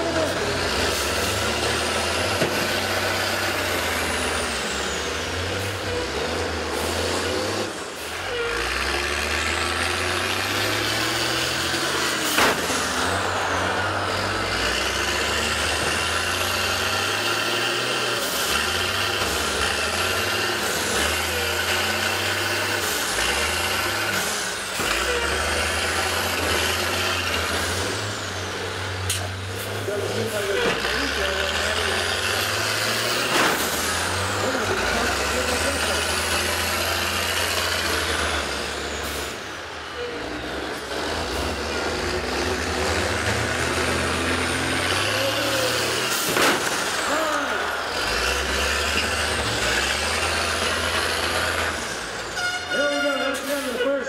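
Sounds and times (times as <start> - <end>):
bus engines revving: 0.0 - 54.0.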